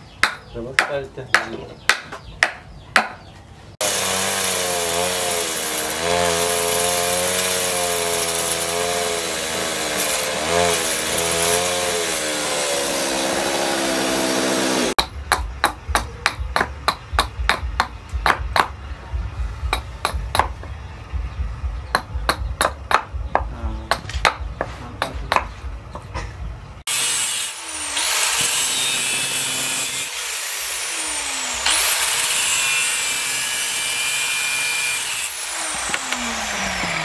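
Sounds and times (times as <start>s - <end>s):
hatchet chopping wood: 0.1s - 3.2s, 3.8s - 18.8s, 19.7s - 20.7s, 21.9s - 25.6s
chainsaw cutting wood: 3.8s - 15.0s, 26.9s - 37.0s.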